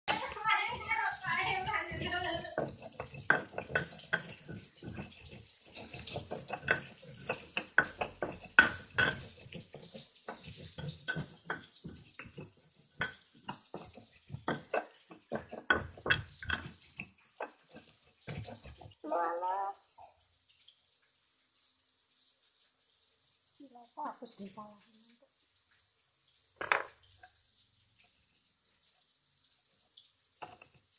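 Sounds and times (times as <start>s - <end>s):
person speaking: 0.1s - 2.7s
stone pestle grinding in mortar: 0.1s - 19.0s.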